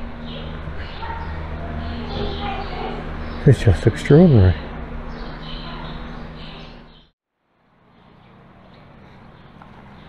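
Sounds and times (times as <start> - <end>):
steady hum: 0.0 - 10.0
steady outdoor hiss: 0.0 - 10.0
faint high chirping: 0.1 - 7.1.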